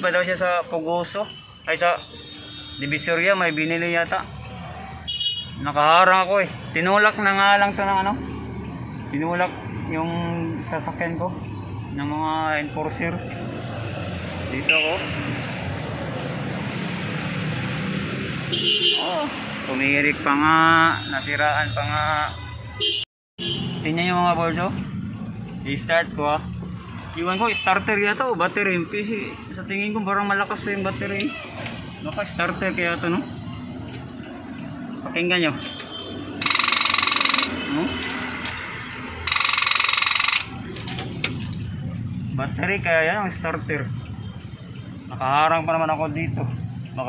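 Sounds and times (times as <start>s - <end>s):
starter solenoid chattering: 35.7s - 37.6s, 39.2s - 41.5s.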